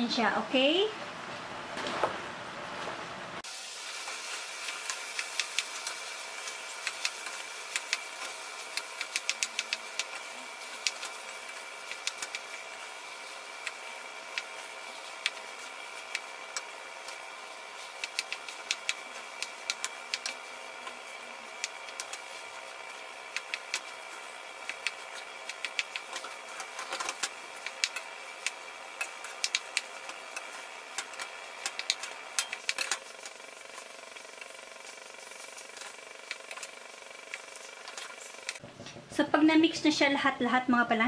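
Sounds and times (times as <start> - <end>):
steady mechanical hum: 0.0 - 41.0.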